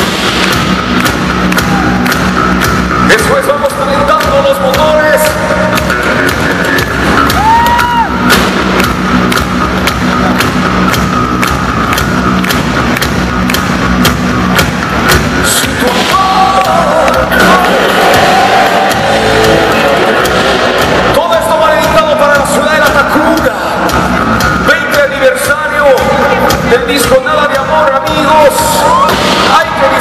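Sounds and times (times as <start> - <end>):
bass: 0.0 - 30.0
distorted electric guitars: 0.0 - 30.0
drum hits: 0.0 - 30.0.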